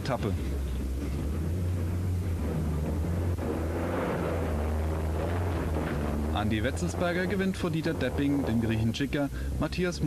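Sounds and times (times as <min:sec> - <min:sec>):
rally car engine drone: 0:00.0 - 0:10.0
tyre and gravel noise: 0:00.0 - 0:10.0.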